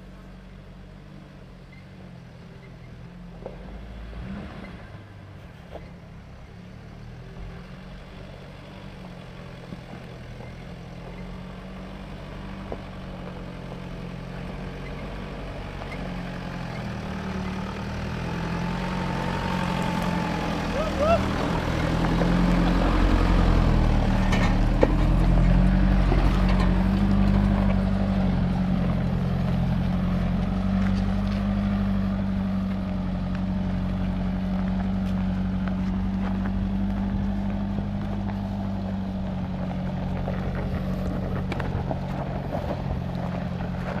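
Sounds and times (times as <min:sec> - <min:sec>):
engine running under load: 0:00.0 - 0:44.0.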